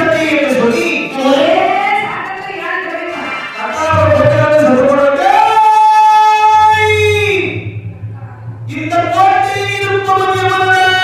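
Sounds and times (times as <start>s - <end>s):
low drone: 3.9s - 5.1s, 6.0s - 11.0s.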